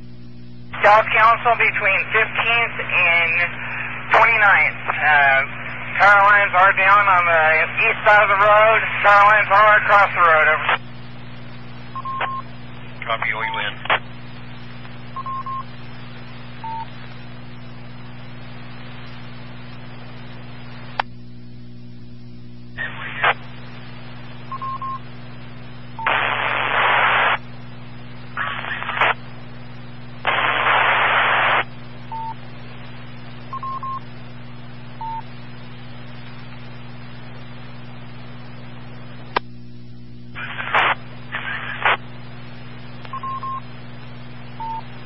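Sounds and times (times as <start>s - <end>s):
steady radio hum: 0.0s - 45.0s
static hiss bursts: 0.7s - 11.6s, 22.8s - 33.1s, 40.3s - 45.0s.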